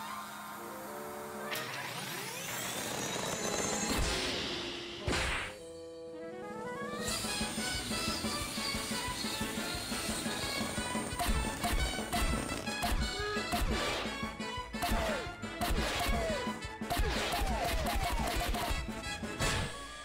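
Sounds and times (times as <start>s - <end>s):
cartoon slapstick music: 7.0s - 20.0s.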